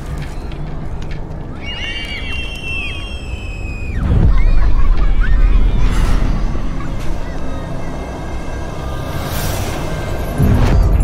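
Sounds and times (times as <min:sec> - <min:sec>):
high chirping bird-like calls: 0:01.5 - 0:05.8
long whistling tone: 0:01.6 - 0:04.0.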